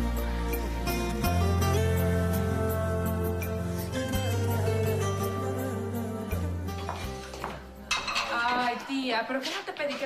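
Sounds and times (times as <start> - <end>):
soft background music: 0.0 - 10.0
dishes and cutlery clattering: 6.8 - 10.0.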